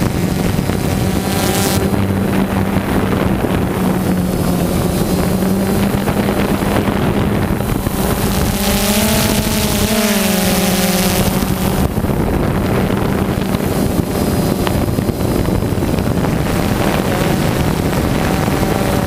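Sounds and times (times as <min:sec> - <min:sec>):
drone motors buzzing: 0:00.0 - 0:19.0
wind noise on microphone: 0:00.0 - 0:19.0.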